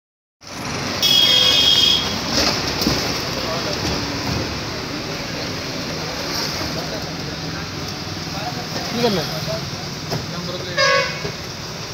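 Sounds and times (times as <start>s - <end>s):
street traffic: 0.4s - 11.9s.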